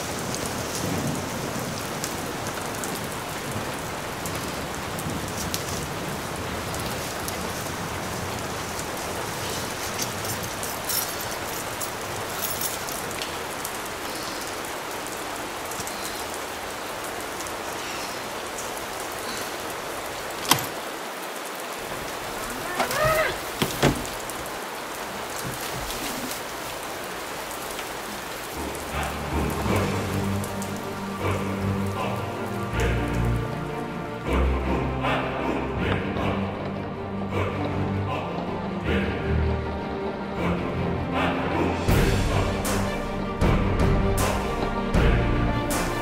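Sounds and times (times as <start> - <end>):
rain falling on pavement: 0.0 - 46.0
music: 28.6 - 46.0.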